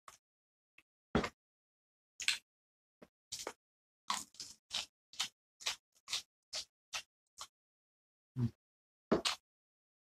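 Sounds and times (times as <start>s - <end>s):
person chewing crunchy vegetables: 3.3s - 7.5s.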